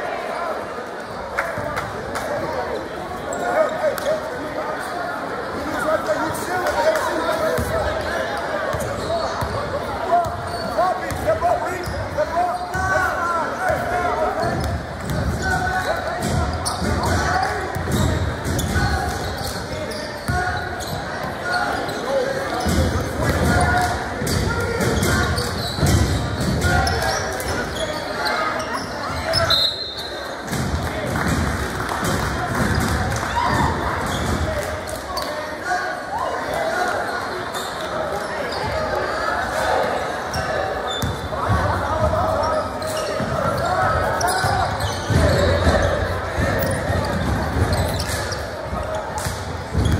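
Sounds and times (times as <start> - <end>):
basketball bouncing on court: 8.7 - 12.1, 13.7 - 21.0, 40.9 - 49.9.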